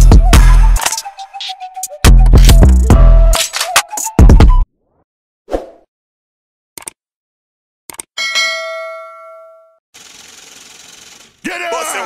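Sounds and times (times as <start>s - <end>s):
notification bell ding: 8.2s - 9.7s.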